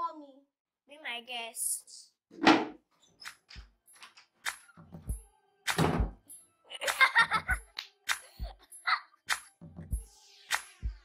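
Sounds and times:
deep thuds: 5.8s - 6.2s.

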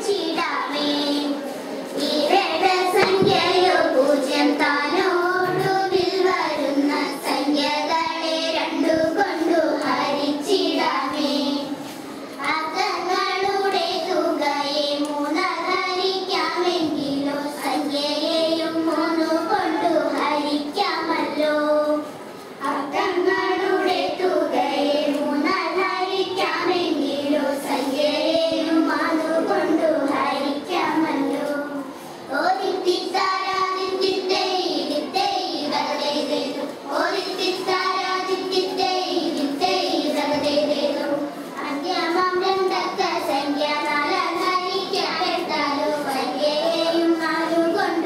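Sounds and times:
girls singing into microphone: 0.0s - 48.0s.

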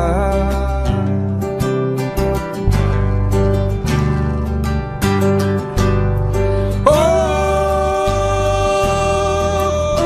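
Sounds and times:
acoustic guitar strumming chords: 0.0s - 10.0s
bass notes: 0.0s - 10.0s.

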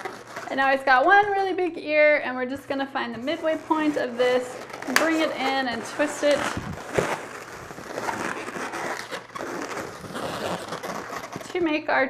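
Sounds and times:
balloon rubbing and twisting: 0.0s - 1.6s, 3.1s - 11.8s.

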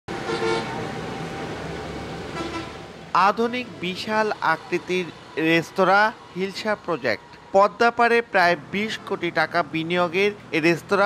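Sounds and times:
outdoor traffic noise: 0.1s - 11.0s
vehicle horn toot: 0.2s - 0.8s, 2.4s - 2.8s.

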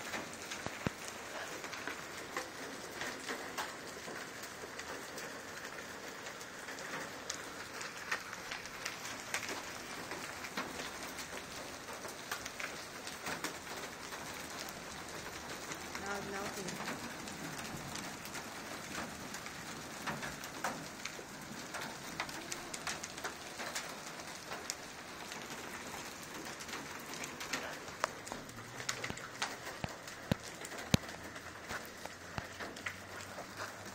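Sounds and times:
hail and rain on pavement and cars: 0.0s - 33.9s.

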